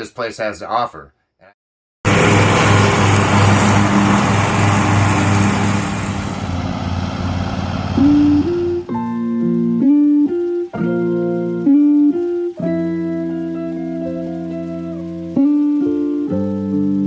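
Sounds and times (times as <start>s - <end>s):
riding lawn mower engine: 2.1s - 9.0s, 12.3s - 16.3s
plucked acoustic guitar music: 8.0s - 16.3s.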